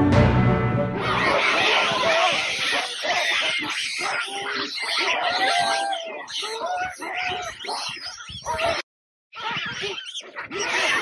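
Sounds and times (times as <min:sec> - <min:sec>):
baboons calling: 0:01.1 - 0:08.8, 0:09.4 - 0:11.0.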